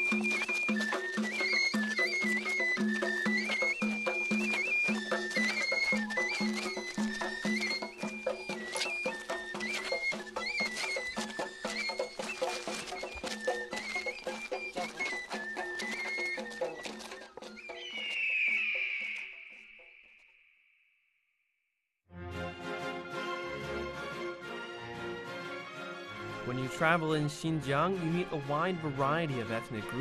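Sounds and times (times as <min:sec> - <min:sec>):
high flute melody: 0:00.0 - 0:19.8.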